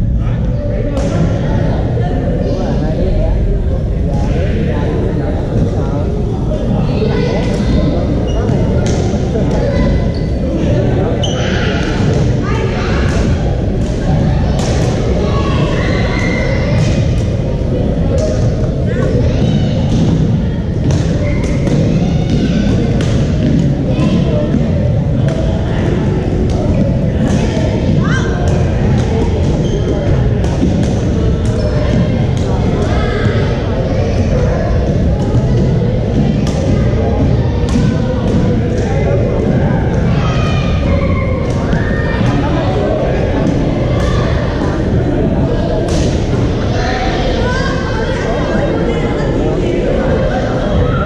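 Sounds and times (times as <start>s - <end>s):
babble of voices: 0.0s - 51.0s
low hum of sports hall: 0.0s - 51.0s.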